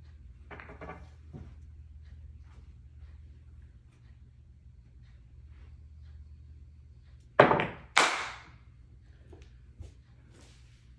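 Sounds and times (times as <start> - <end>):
pool balls clacking: 0.4 - 1.6, 7.4 - 8.6.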